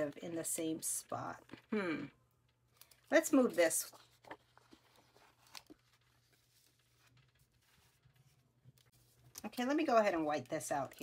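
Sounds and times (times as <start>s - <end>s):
paper rustling and tapping: 2.8s - 11.0s.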